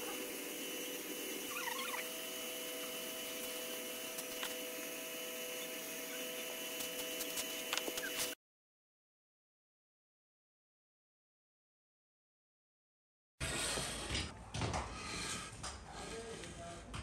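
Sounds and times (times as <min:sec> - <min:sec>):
squeaky chirp: 0:01.5 - 0:02.1.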